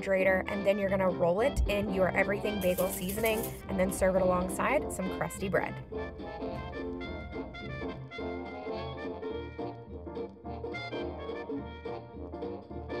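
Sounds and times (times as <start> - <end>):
upbeat jazzy swing music: 0.4 - 5.4.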